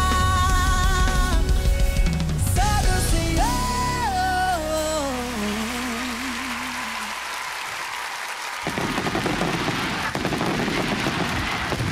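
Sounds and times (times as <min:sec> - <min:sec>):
audience applause: 0:05.4 - 0:11.9
low rumbling crackle: 0:08.8 - 0:11.9.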